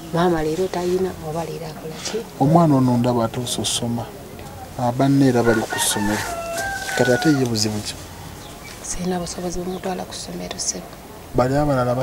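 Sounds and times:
rooster crowing: 5.2s - 8.0s.

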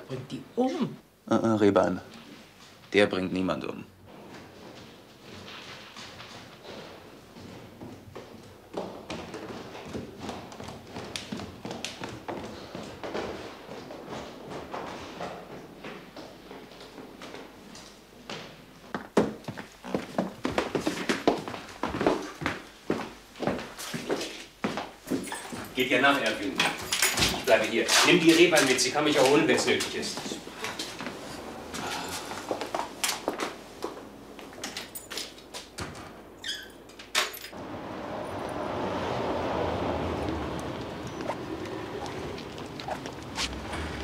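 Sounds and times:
footsteps: 4.1s - 36.0s, 39.8s - 44.0s.

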